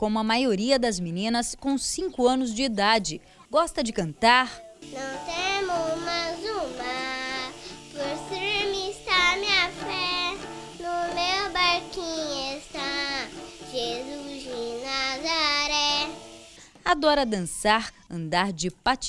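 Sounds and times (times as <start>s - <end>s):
girl singing: 4.6s - 16.5s
low held backing notes: 4.8s - 16.5s.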